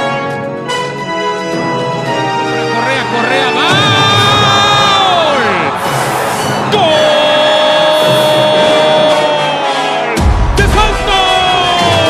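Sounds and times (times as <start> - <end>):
busy music backing: 0.0 - 12.0.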